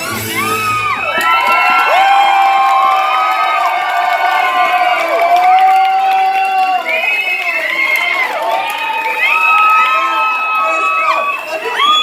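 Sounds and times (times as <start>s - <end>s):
song music: 0.0s - 1.7s
audience cheering and whooping: 0.0s - 12.0s.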